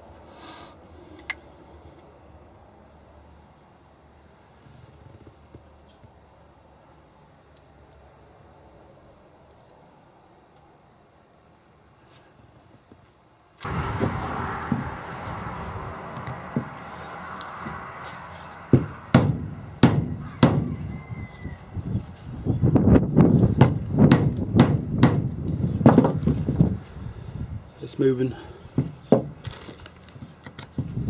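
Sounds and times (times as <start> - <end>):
steady background noise: 0.0 - 31.0.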